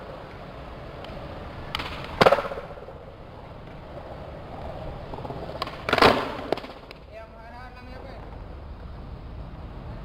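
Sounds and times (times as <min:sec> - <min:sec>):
skateboard rolling on hard court: 0:00.0 - 0:07.0
skateboard slapping: 0:00.0 - 0:07.1.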